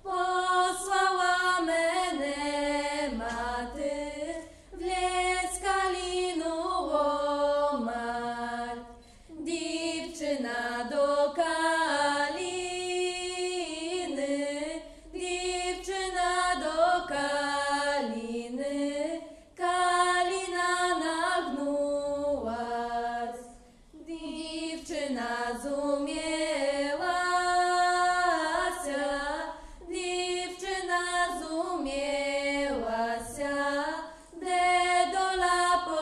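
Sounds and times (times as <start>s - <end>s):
women singing in harmony: 0.0s - 36.0s
singers breathing: 4.4s - 4.7s, 19.2s - 19.6s, 29.5s - 29.8s, 34.0s - 34.4s.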